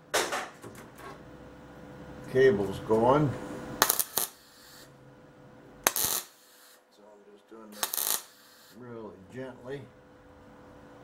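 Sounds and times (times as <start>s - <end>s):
welder crackling bursts: 3.8s - 4.9s, 5.8s - 6.8s, 7.8s - 8.8s.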